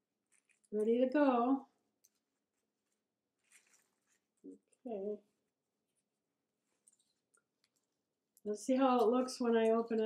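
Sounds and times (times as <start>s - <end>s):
paper crinkling: 0.0s - 1.3s, 1.9s - 4.9s.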